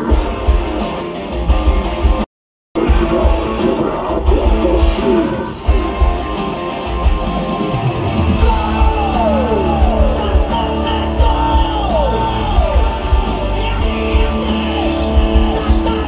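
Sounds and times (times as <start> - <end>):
hard rock band playing: 0.0 - 16.0.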